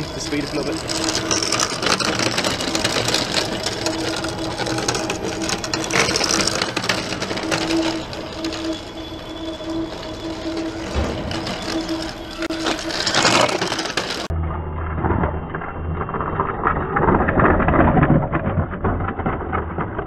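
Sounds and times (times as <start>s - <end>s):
electric motor hum: 0.0s - 14.5s
rattle of wheels and frame: 0.0s - 20.0s.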